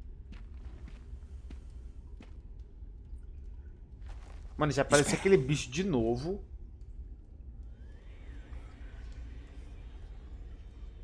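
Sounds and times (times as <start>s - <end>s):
soft footsteps: 0.0s - 2.7s
low ambient rumble: 0.0s - 11.0s.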